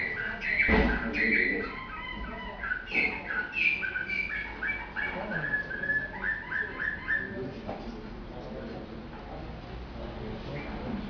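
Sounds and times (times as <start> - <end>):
canary singing: 0.0 - 7.6.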